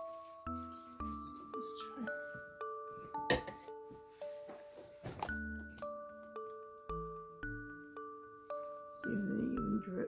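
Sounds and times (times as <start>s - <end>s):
bell-like mallet melody: 0.0s - 10.0s.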